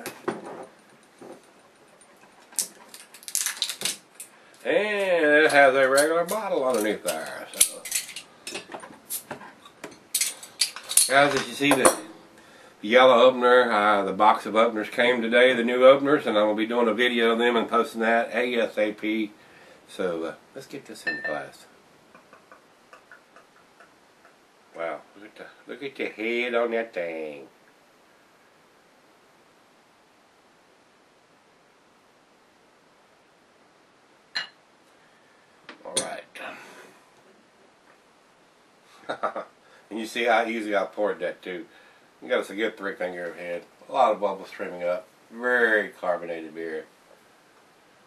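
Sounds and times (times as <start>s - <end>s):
faint room hiss: 0.0s - 48.0s
bottle foil crinkling: 0.8s - 4.6s.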